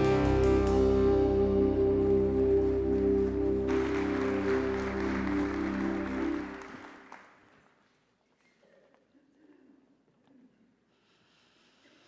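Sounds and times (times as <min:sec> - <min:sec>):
band holding final chord: 0:00.0 - 0:06.8
congregation applauding: 0:02.6 - 0:08.0.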